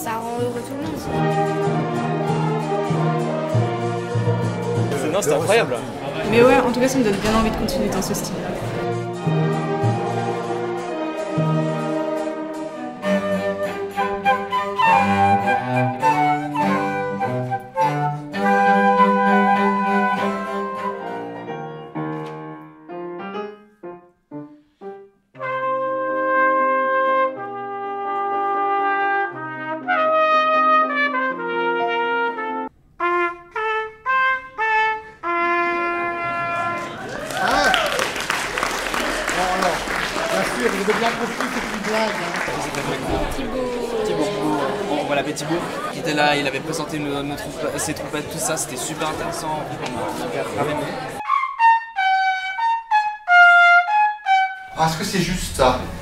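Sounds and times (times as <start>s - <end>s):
people chattering in a room: 0.0s - 21.5s, 38.5s - 51.2s
flute with baroque ensemble: 9.3s - 21.5s, 51.2s - 54.7s
solo trumpet notes: 24.8s - 37.0s.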